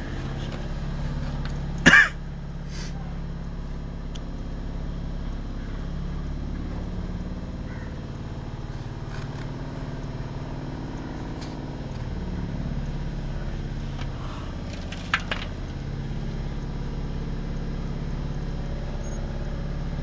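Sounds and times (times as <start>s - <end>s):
motor humming: 0.0s - 20.0s.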